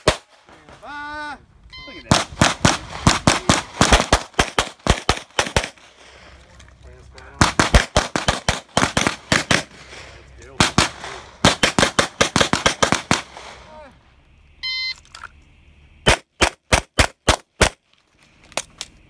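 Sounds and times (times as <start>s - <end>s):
short electronic beep: 1.6s - 2.1s, 14.4s - 15.2s.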